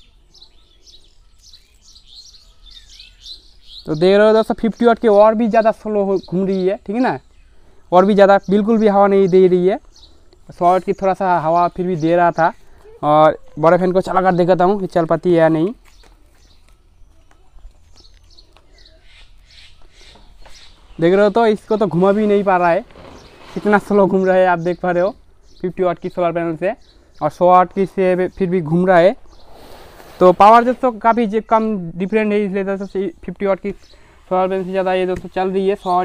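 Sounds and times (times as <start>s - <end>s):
small birds chirping: 0.0s - 36.0s.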